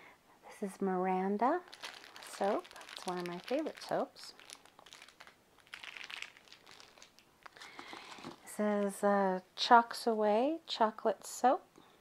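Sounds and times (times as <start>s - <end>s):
plastic wrap crinkling: 1.4s - 9.0s.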